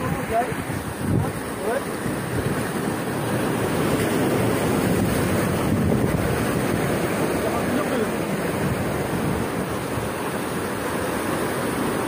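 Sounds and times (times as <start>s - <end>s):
waves breaking on rocks: 0.0s - 12.0s
wind buffeting microphone: 0.0s - 12.0s.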